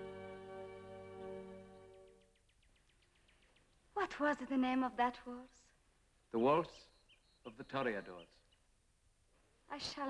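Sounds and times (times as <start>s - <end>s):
film score chord: 0.0s - 2.2s
rapid trill of animal chirps: 6.8s - 8.7s.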